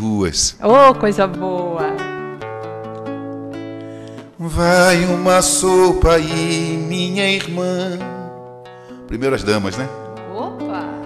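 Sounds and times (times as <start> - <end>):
acoustic guitar strummed chords: 0.6 - 11.0.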